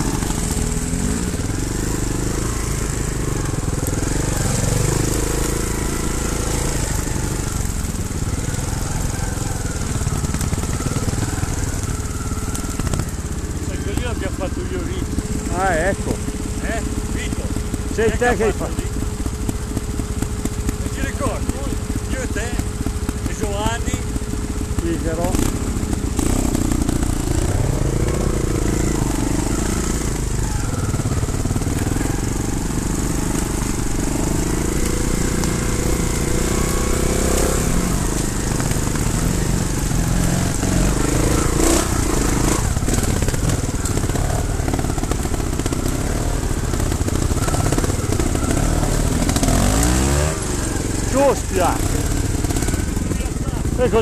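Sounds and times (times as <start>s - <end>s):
motorcycle engine at low revs: 0.0s - 54.0s.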